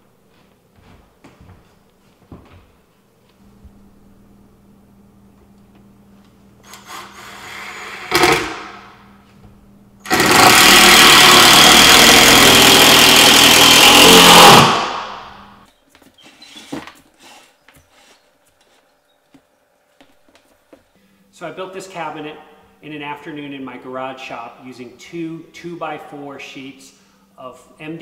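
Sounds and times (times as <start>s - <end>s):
impact driver driving screw: 6.7s - 8.7s, 10.1s - 15.1s.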